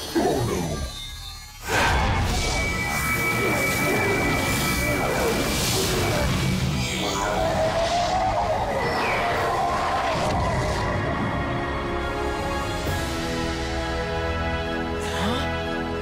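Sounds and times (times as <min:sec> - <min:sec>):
dramatic cartoon music: 0:00.0 - 0:16.0.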